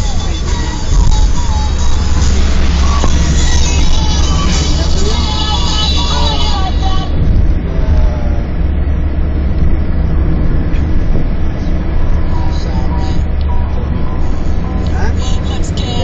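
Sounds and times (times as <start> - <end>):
music playing: 0.0 - 7.3, 12.0 - 16.0
car interior driving rumble: 0.0 - 16.0.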